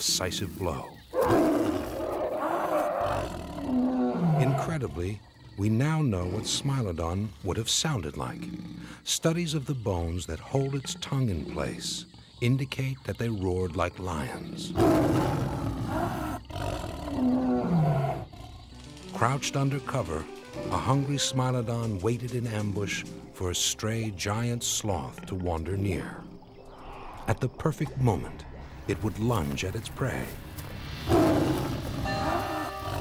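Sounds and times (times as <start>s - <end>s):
big cat roar: 1.2s - 5.6s, 8.1s - 9.0s, 14.3s - 18.7s.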